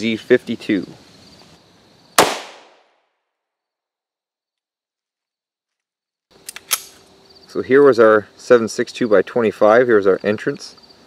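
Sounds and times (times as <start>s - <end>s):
pistol shot with echo: 2.2s - 2.9s.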